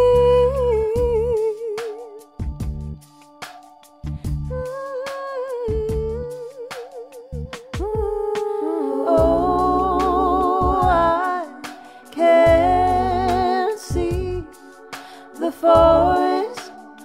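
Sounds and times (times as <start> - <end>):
woman humming and singing: 0.0 - 2.5, 4.5 - 14.6
soft low chords accompaniment: 0.0 - 4.8, 5.6 - 17.0.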